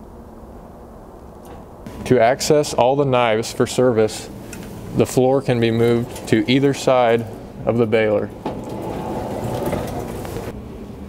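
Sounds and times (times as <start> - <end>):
metal sliding noise: 4.1 - 10.5.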